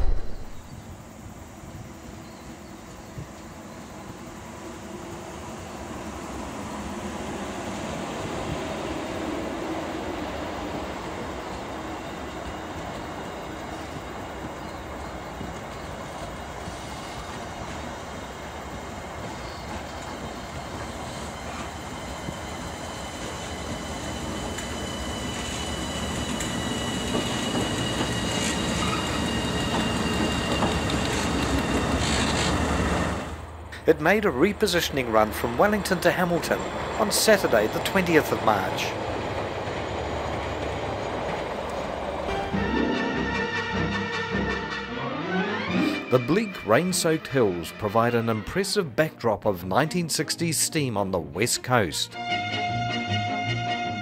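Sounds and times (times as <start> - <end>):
train wheels rolling on rails: 0.0 - 42.5
diesel locomotives passing: 0.0 - 54.0.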